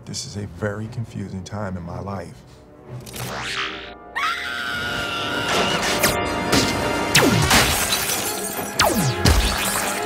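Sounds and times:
film score music: 0.0 - 10.0
glass shattering: 7.2 - 10.0.

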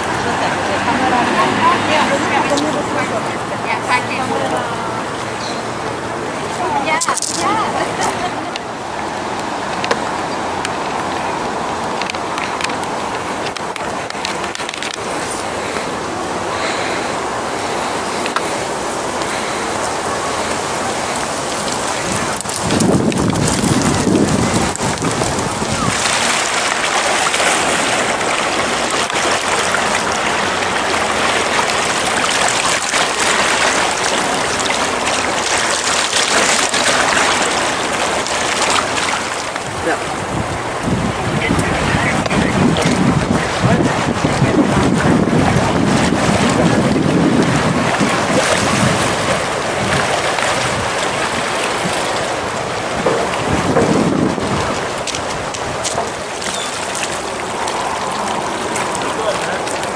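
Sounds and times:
wind and waves rushing: 0.0 - 59.9
wind rumbling on microphone: 0.0 - 59.9.

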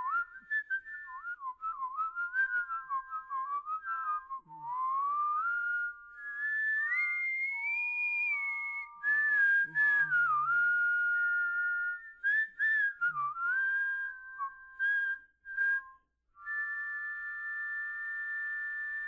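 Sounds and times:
people whistling in chords: 0.0 - 19.0.

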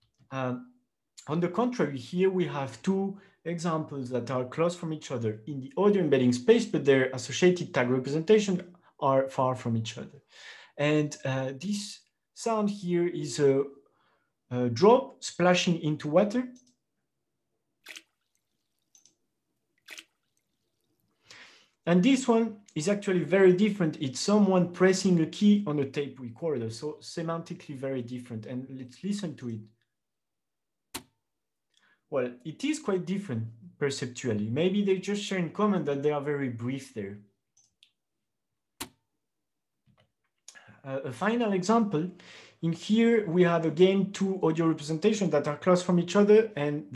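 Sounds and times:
drop splashing into water: 17.8 - 19.1, 19.8 - 21.0.

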